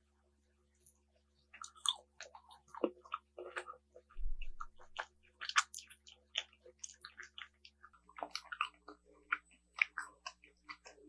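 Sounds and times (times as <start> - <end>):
chewing: 0.8 - 11.0.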